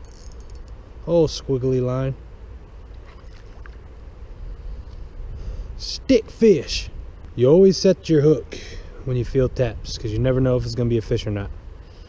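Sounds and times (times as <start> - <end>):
faint small ticks: 0.0 - 0.8
wind buffeting microphone: 9.0 - 11.8.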